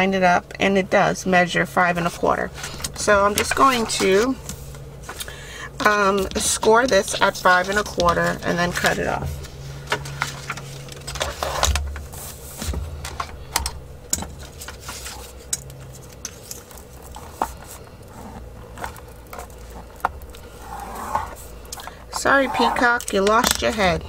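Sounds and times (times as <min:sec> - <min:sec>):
steady low hum: 0:00.0 - 0:24.0
paper sliding on plastic board: 0:20.5 - 0:21.5, 0:22.2 - 0:23.0.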